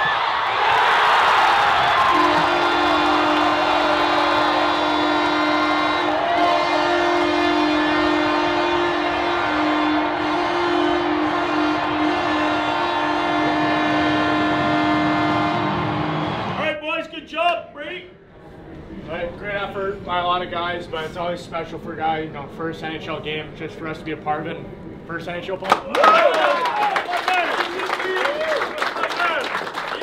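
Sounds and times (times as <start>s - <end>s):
crowd cheering: 0.0s - 17.0s, 25.7s - 30.0s
two-note goal horn blaring: 2.0s - 16.6s.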